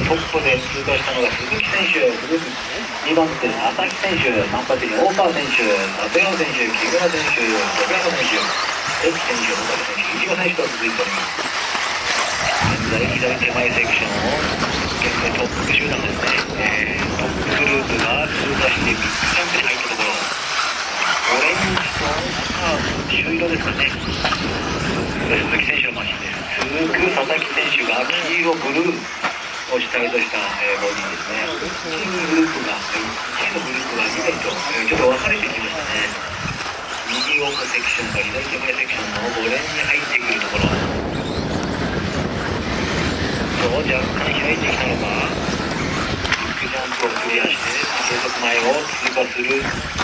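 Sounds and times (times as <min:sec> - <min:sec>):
announcer talking: 0:00.0 - 0:11.4, 0:12.4 - 0:20.3, 0:21.0 - 0:24.1, 0:25.1 - 0:36.3, 0:37.0 - 0:41.0, 0:43.6 - 0:45.5, 0:46.3 - 0:49.8
rc cars high whine: 0:00.2 - 0:25.4.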